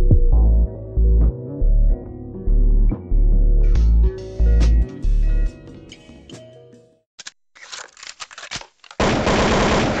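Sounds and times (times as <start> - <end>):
gun clicks: 7.2 - 9.1
automatic gunfire: 9.0 - 10.0.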